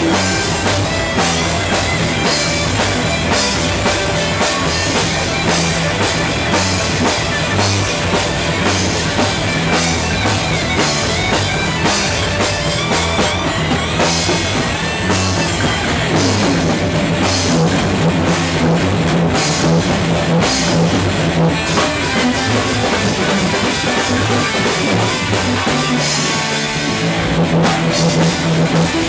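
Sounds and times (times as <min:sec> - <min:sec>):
distorted electric guitar: 0:00.0 - 0:29.0
drum kit: 0:00.0 - 0:29.0
electric bass: 0:00.0 - 0:29.0.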